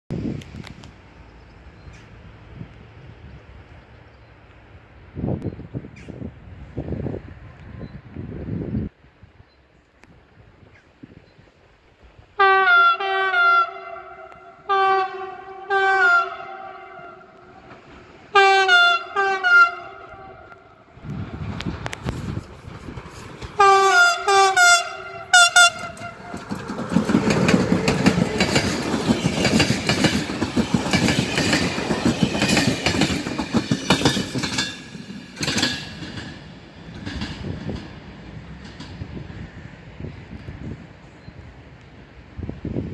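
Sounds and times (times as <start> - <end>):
train horn toots: 12.4 - 17.7, 18.3 - 20.9, 23.6 - 26.6
train wheels clattering over rails: 21.2 - 40.8.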